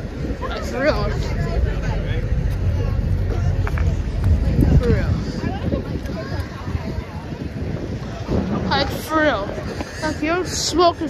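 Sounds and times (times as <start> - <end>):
faint voices of people: 0.0 - 11.0
wind buffeting microphone: 0.0 - 11.0.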